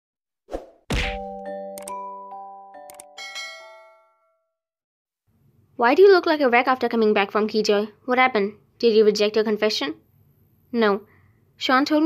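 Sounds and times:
ringing chime-like notes: 1.3 - 4.6.

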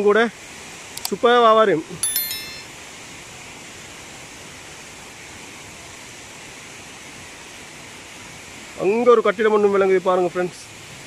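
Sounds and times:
bright chiming sound effect: 2.0 - 2.7.

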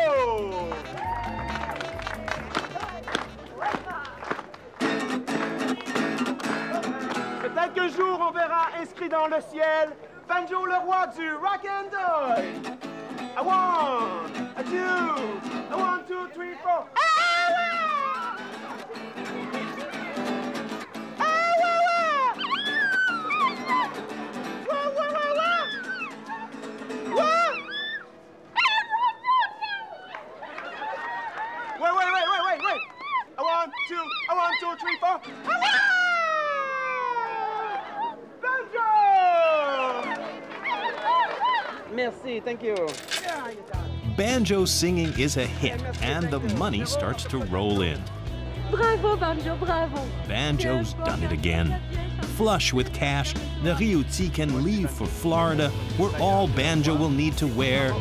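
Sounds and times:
background music: 0.0 - 4.2, 43.7 - 58.0
acoustic guitar strumming: 4.8 - 7.8, 12.2 - 16.3, 17.7 - 22.4, 23.2 - 24.7, 25.8 - 28.4, 43.8 - 58.0
dog howling: 21.2 - 24.0, 24.7 - 30.2, 32.1 - 38.2, 39.6 - 41.8
man singing: 50.2 - 58.0.

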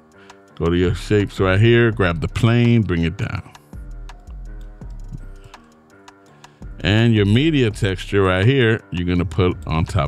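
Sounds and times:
soft background music: 0.0 - 10.0
man talking: 0.6 - 3.6, 6.8 - 10.0.

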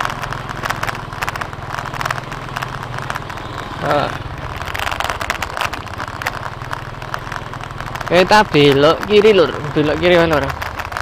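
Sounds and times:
light ticks and rattles: 0.0 - 11.0
small motorcycle engine running: 0.0 - 11.0.

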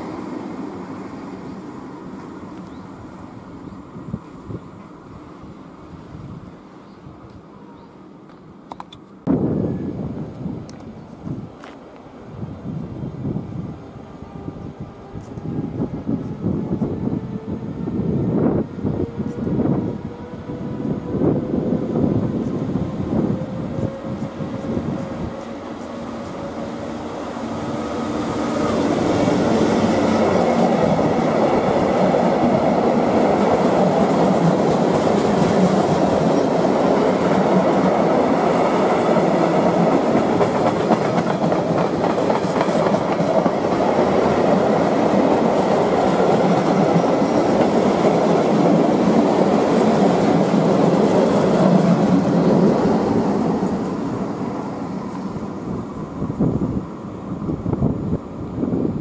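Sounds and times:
electric locomotive whine: 0.0 - 59.0
train wheels clattering over rail joints: 39.8 - 43.9.

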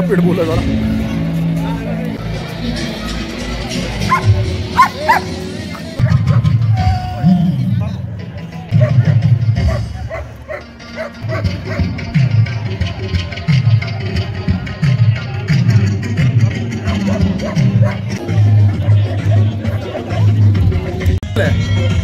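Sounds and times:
music with rhythmic bass line: 0.0 - 22.0
dog barking: 4.1 - 6.5, 8.7 - 9.0, 9.6 - 11.9, 16.9 - 18.2.

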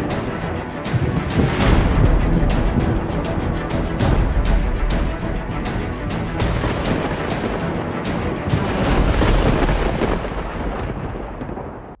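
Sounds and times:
thunder-like rumbling sting: 8.5 - 11.8.

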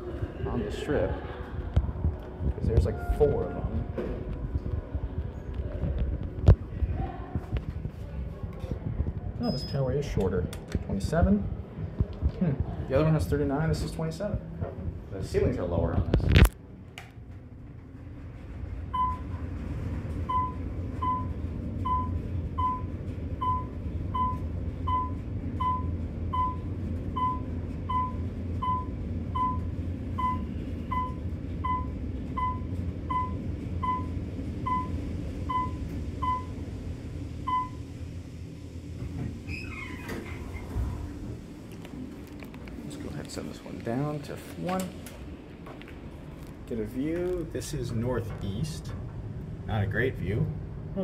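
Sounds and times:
elevator rumbling: 0.0 - 51.0
elevator doors sliding open: 2.6 - 4.4, 31.0 - 42.9.

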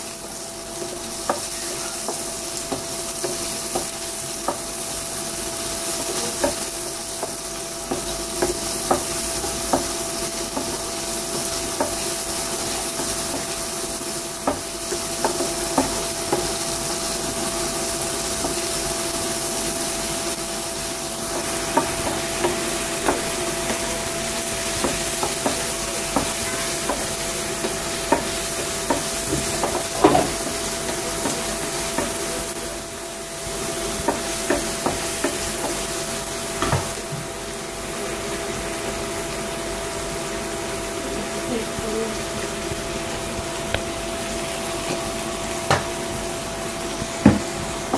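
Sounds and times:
onions sizzling in oil: 0.0 - 47.9
spatula tapping and scraping pan: 0.7 - 19.1, 20.3 - 32.7, 33.6 - 37.0.

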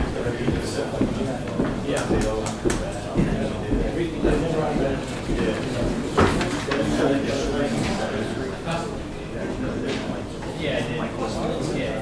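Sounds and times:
indistinct talk of several people: 0.0 - 12.0.

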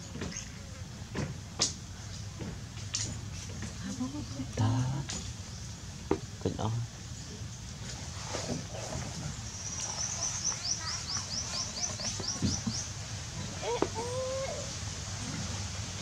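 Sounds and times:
low background noise: 0.0 - 16.0
low wavering bird call: 13.6 - 14.8.

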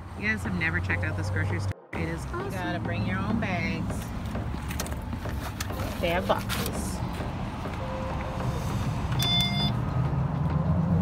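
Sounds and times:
car engine rumble: 0.0 - 11.0
short electronic beep: 9.2 - 9.8.

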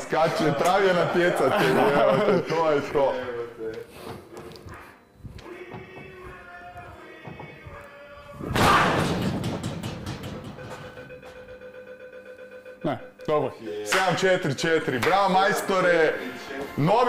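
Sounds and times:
punch slamming into bag: 8.5 - 9.5
arcade machine electronic tune: 10.6 - 13.5.

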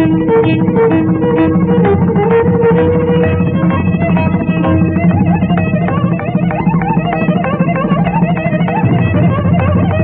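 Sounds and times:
hand drum strokes: 0.0 - 10.0
steady low drone: 0.0 - 10.0
violin ornamented melody: 0.0 - 10.0.

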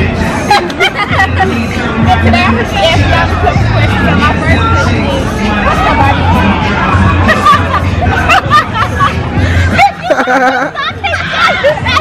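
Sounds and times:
background music: 0.0 - 12.0
women laughing and chattering: 0.0 - 12.0.

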